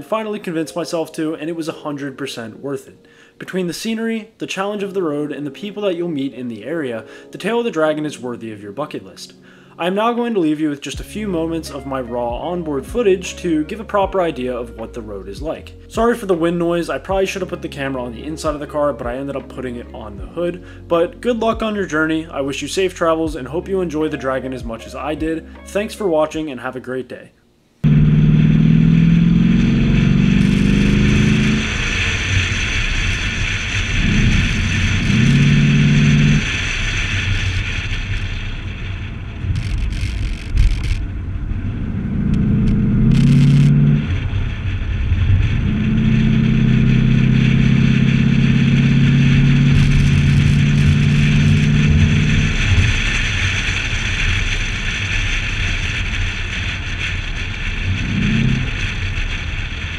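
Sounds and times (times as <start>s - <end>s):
car engine revving: 27.8s - 59.9s
wind noise on microphone: 28.8s - 59.9s.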